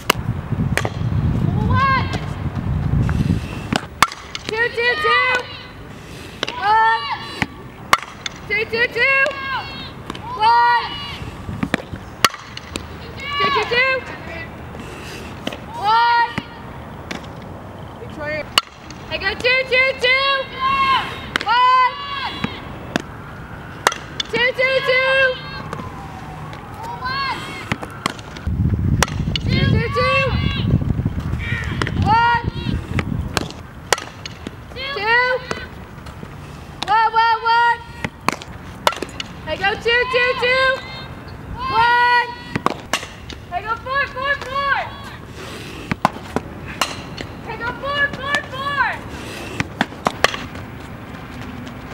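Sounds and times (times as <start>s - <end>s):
wind rumble on microphone: 0.0s - 3.9s, 28.4s - 33.8s
softball bat cracks: 0.8s - 1.1s, 3.7s - 4.6s, 7.4s - 8.5s, 11.6s - 12.9s, 18.5s - 19.0s, 23.8s - 24.4s, 27.7s - 29.6s, 33.4s - 34.6s, 38.0s - 39.4s, 42.5s - 43.4s, 45.9s - 47.3s, 49.6s - 50.6s
softball players shouting calls: 1.5s - 2.3s, 4.3s - 11.5s, 12.2s - 14.6s, 15.6s - 16.8s, 18.0s - 23.1s, 23.8s - 27.9s, 29.0s - 33.0s, 34.6s - 35.8s, 36.8s - 38.3s, 39.1s - 45.4s, 46.8s - 49.2s.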